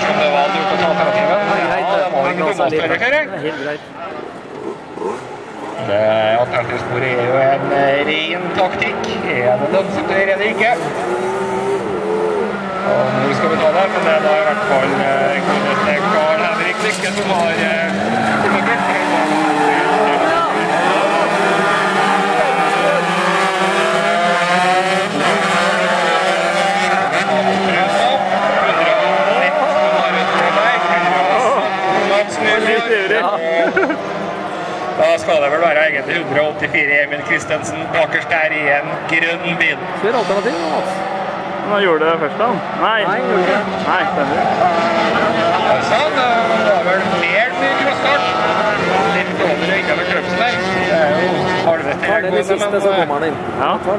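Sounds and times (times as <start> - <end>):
kart engines racing: 0.0 - 53.9.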